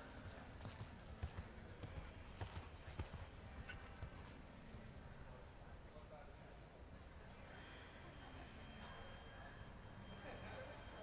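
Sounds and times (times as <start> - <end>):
horse hoofbeats on soft ground: 0.1 - 4.4.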